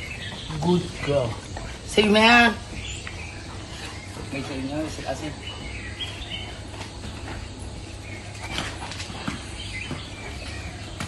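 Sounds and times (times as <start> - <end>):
low background hum: 0.0 - 11.0
paws and claws clicking on concrete: 0.0 - 11.0.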